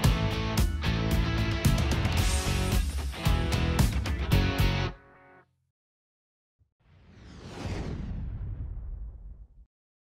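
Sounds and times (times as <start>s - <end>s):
whoosh sound effect: 6.9s - 9.4s.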